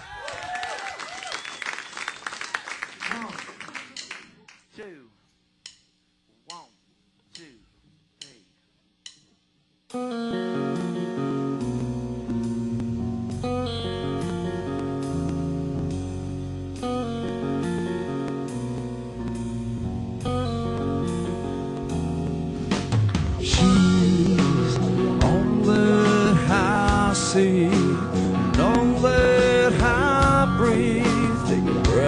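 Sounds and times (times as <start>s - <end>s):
electric guitar rock song: 9.9s - 32.0s
guitar notes sliding down: 9.9s - 32.0s.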